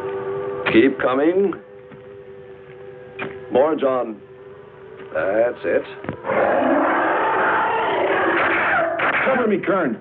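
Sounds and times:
monster's rasping screech: 0:06.2 - 0:09.1.

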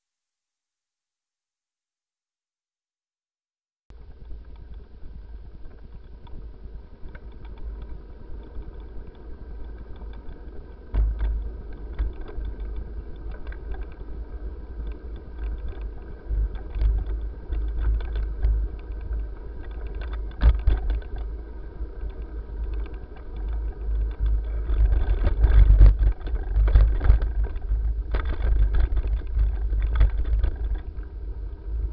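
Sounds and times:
bicycle tyres rumbling on asphalt: 0:03.9 - 0:31.9
wind on microphone: 0:04.0 - 0:31.9
bicycle rattling clicks: 0:07.0 - 0:31.4.

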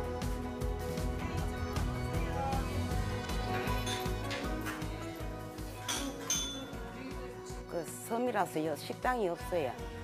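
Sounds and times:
background music with steady beat: 0:00.0 - 0:10.0
high-pitched clink: 0:03.7 - 0:04.4, 0:05.8 - 0:06.8.

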